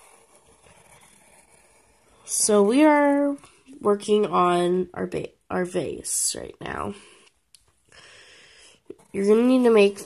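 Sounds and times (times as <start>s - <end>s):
pencil scratching on paper: 0.0s - 3.7s, 8.8s - 10.0s.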